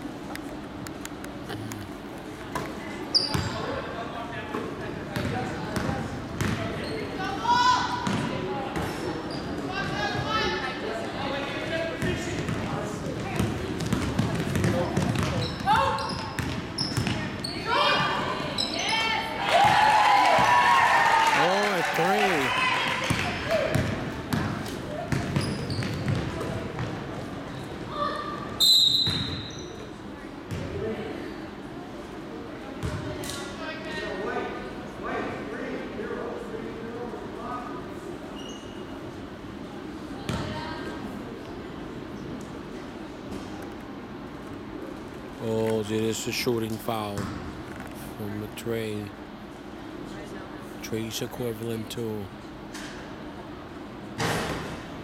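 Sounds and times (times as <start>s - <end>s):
basketball bouncing on wooden floor: 5.2s - 6.6s, 8.0s - 8.3s, 12.4s - 15.8s, 16.4s - 17.2s
high whistle blast: 28.6s - 29.5s.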